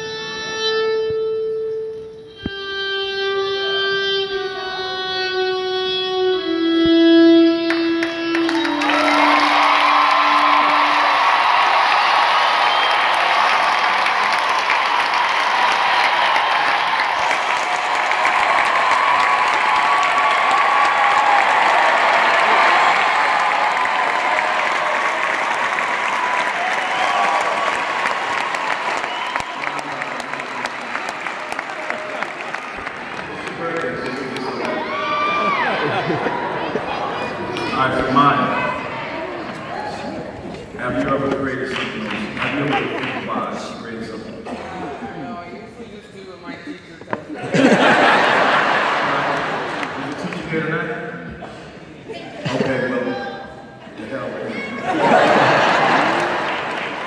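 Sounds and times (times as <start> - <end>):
slow melody of held notes: 0.0 - 11.0
audience applauding and cheering: 7.6 - 44.3, 47.4 - 50.9, 54.1 - 57.0.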